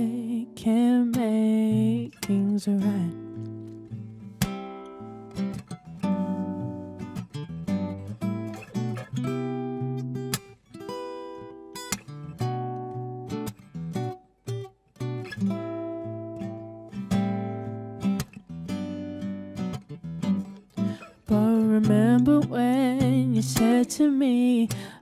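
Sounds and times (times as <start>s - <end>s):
person singing with vibrato: 0.0s - 3.2s, 21.0s - 25.0s
acoustic guitar strumming: 0.0s - 25.0s.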